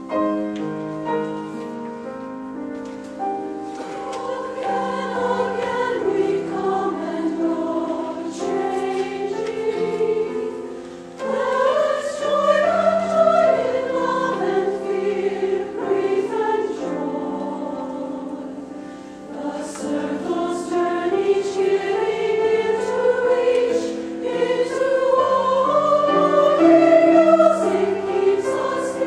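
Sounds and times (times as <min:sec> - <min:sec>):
grand piano accompaniment: 0:00.0 - 0:29.0
mixed choir singing: 0:03.8 - 0:29.0.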